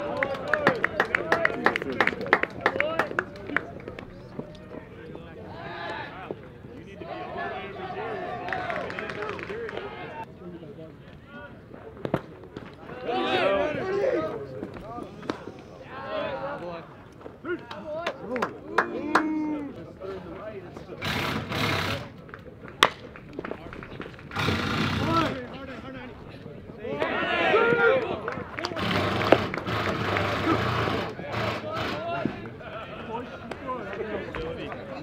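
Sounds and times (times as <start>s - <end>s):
people shouting and calling out: 0.0s - 10.3s, 12.7s - 21.3s, 24.4s - 35.0s
short bursts of noise: 21.0s - 22.1s.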